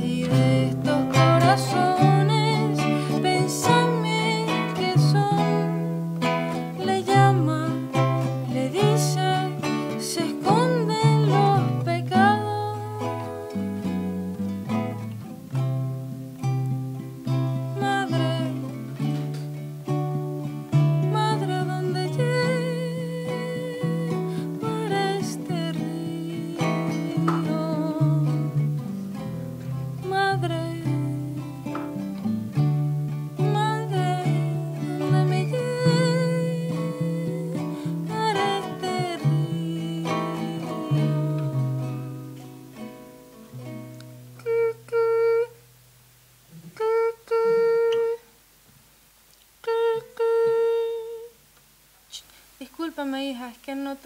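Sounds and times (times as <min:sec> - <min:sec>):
person singing: 0:00.0 - 0:15.6, 0:16.6 - 0:43.0, 0:44.0 - 0:45.6, 0:46.6 - 0:48.4, 0:49.6 - 0:51.4
small plucked string instrument: 0:00.0 - 0:45.6
acoustic guitar picking: 0:00.0 - 0:45.8.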